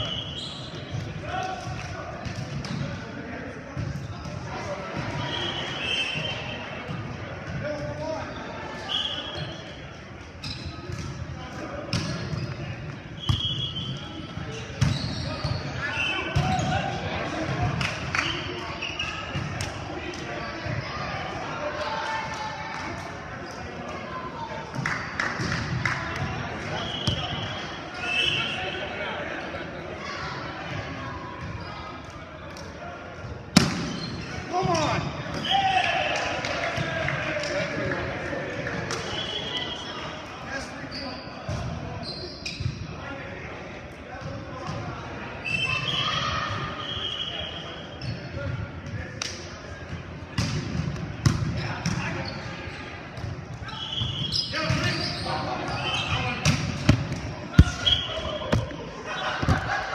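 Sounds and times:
players shouting: 53.7s - 59.9s.

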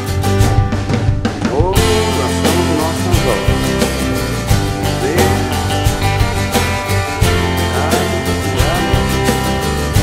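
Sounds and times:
country music with plucked guitar: 0.0s - 10.0s.

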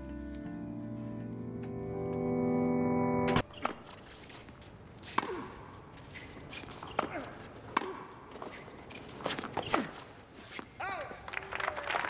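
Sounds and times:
orchestral music chord: 0.0s - 3.4s
sneakers squeaking on court: 3.4s - 10.8s.

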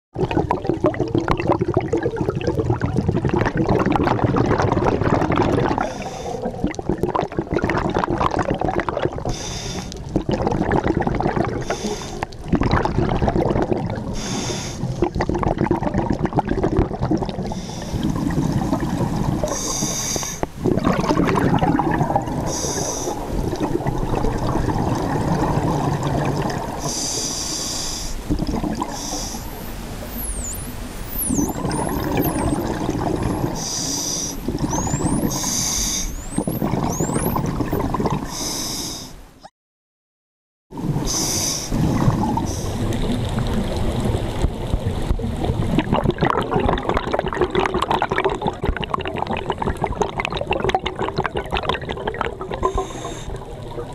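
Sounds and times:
rumble of bubbles: 0.2s - 27.4s, 28.2s - 38.5s, 40.7s - 53.9s
diver breathing through regulator: 5.8s - 6.6s, 9.3s - 10.0s, 11.6s - 12.4s, 14.1s - 15.0s, 17.4s - 20.5s, 22.3s - 23.8s, 25.4s - 37.5s, 38.2s - 39.2s, 41.0s - 43.0s, 52.6s - 53.5s.

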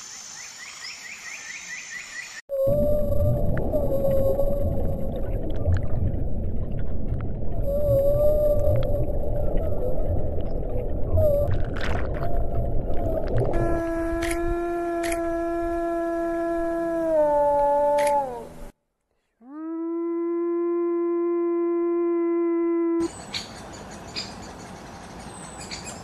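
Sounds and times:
whale call: 2.5s - 5.3s, 7.5s - 18.7s, 19.4s - 23.1s
underwater rumble: 2.5s - 18.7s
wolf howling: 13.0s - 18.7s.

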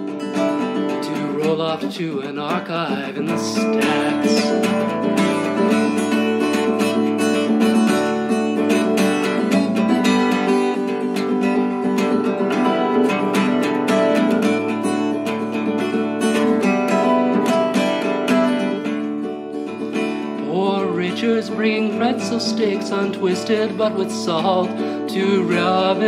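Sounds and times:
strummed acoustic guitar: 0.0s - 26.0s.

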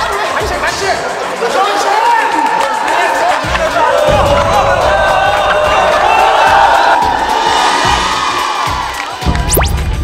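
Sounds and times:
background music: 0.0s - 10.0s
people shouting and screaming: 1.5s - 9.3s.

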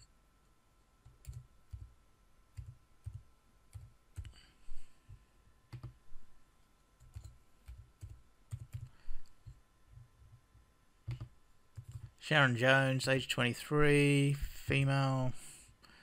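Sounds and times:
computer keyboard typing: 1.0s - 1.9s, 2.5s - 4.4s, 5.7s - 6.0s, 7.0s - 9.0s, 11.0s - 12.2s.

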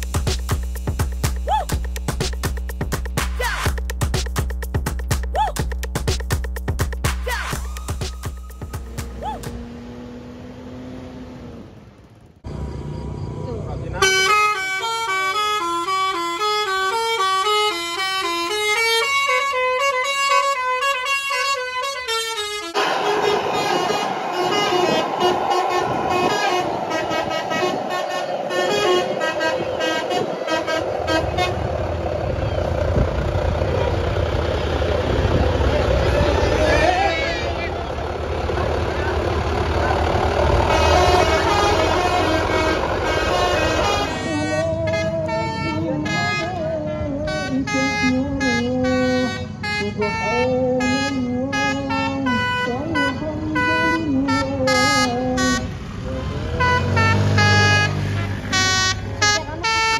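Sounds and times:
bus diesel engine running: 7.3s - 59.9s
multi-tone bus air horns: 14.0s - 33.0s, 34.4s - 59.9s.

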